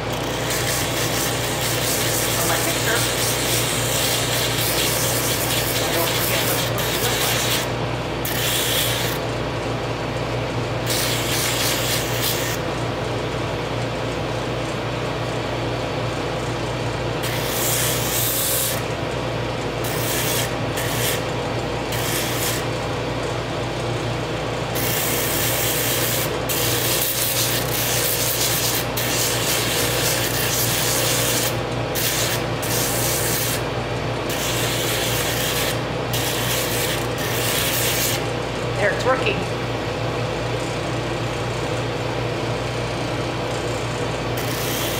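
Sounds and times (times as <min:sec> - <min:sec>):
drum sander motor hum: 0:00.0 - 0:44.9.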